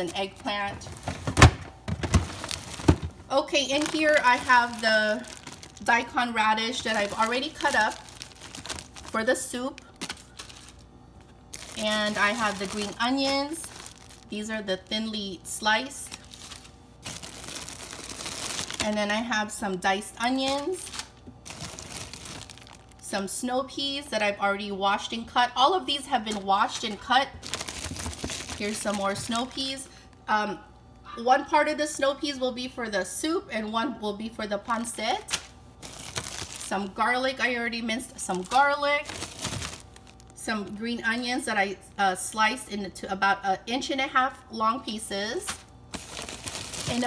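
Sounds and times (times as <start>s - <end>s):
plastic bags crinkling: 0.0s - 23.1s, 26.0s - 30.1s, 34.8s - 36.8s, 38.1s - 40.5s, 45.5s - 47.0s.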